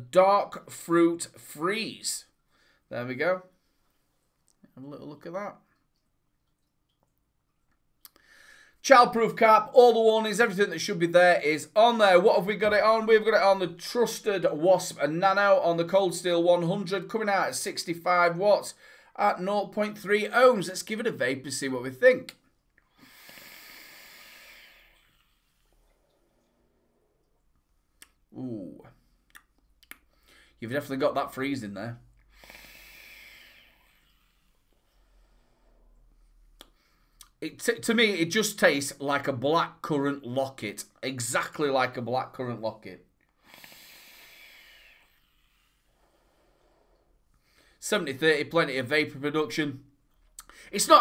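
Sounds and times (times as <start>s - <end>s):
air hissing through vape: 23.0s - 25.4s, 43.5s - 47.0s
faint exhale: 23.0s - 27.0s, 32.2s - 37.2s, 43.4s - 47.8s.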